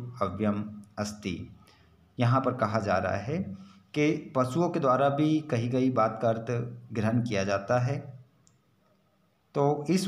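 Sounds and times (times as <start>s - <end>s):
man speaking: 0.0s - 1.6s, 2.2s - 8.2s, 9.5s - 10.0s
faint click: 8.4s - 9.1s.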